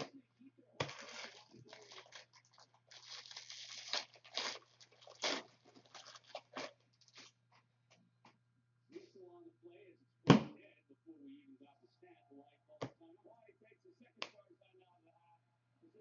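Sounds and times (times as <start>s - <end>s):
foil wrapper tearing and crinkling: 0.8s - 7.3s.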